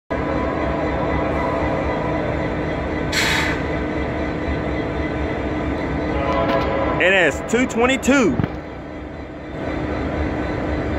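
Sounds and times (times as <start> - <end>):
diesel locomotive engine idling: 0.1 - 10.9.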